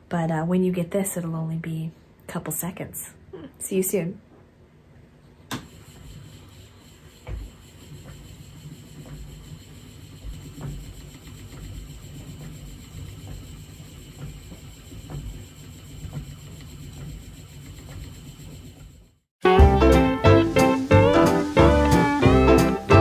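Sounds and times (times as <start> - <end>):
spinning wheel rumbling: 5.7 - 19.2.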